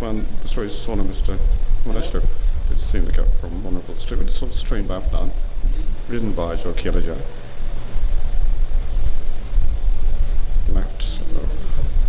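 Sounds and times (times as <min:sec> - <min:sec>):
uneven low rumble: 0:00.0 - 0:12.0.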